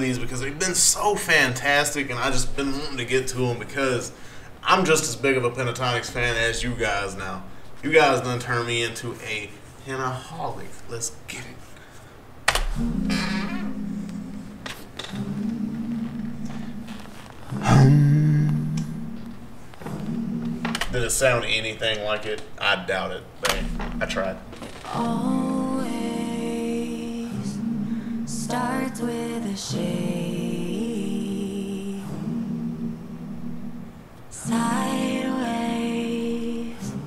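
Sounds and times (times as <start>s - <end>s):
a cappella held vocal note: 12.6s - 20.9s, 24.8s - 37.0s
man singing long low notes: 12.7s - 20.9s.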